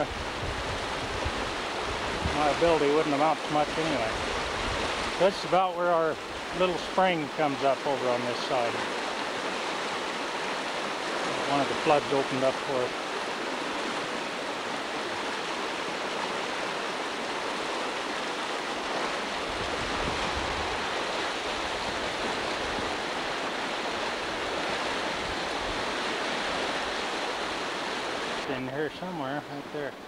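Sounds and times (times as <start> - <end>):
floodwater rushing: 0.0 - 30.0.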